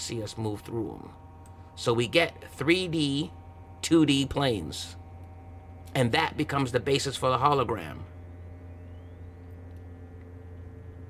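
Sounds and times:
faint high whine: 0.0s - 11.0s
low electrical hum: 0.0s - 11.0s
rising whistle-like tone: 8.6s - 9.6s.

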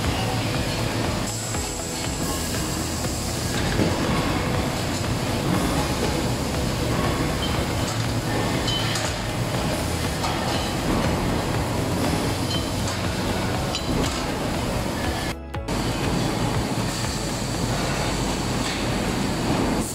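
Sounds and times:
factory machinery running: 0.0s - 19.9s.

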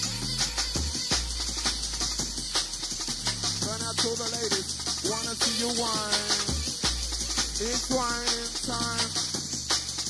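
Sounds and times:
fast breakbeat rave music: 0.0s - 10.0s
heavy bass line: 0.0s - 10.0s.

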